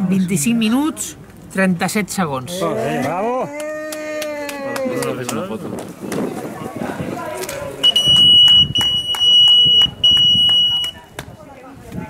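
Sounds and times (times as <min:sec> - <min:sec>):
voices: 0:00.0 - 0:12.0
rhythmic clapping: 0:07.4 - 0:11.3.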